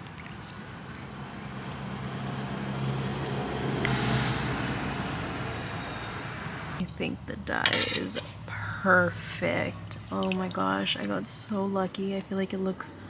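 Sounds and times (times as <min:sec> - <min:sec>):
vehicle engine hum passing: 0:00.0 - 0:06.8.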